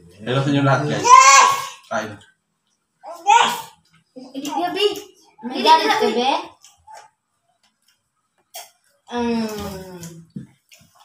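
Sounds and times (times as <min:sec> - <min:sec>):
small clicks of people eating: 0:01.8 - 0:03.0, 0:03.7 - 0:05.4, 0:06.4 - 0:11.0.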